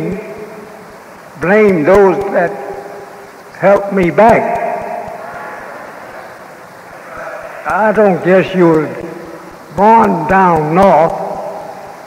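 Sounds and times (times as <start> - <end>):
steady low hiss: 0.0 - 12.0
man speaking: 1.4 - 2.8, 3.6 - 4.8, 7.6 - 11.3.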